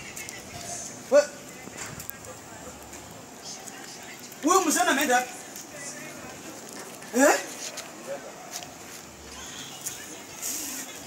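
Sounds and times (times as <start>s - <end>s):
street background noise: 0.0s - 11.0s.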